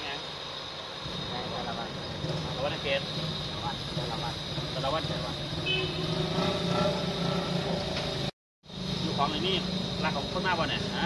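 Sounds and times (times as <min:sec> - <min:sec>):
indistinct voices talking: 0:00.0 - 0:08.0, 0:08.8 - 0:11.0
low hum of engines and traffic: 0:00.0 - 0:11.0.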